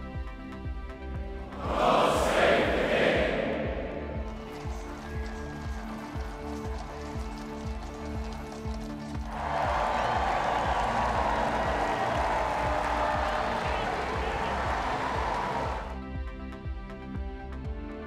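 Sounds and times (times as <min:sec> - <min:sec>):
crowd cheering and clapping: 0:01.5 - 0:16.0.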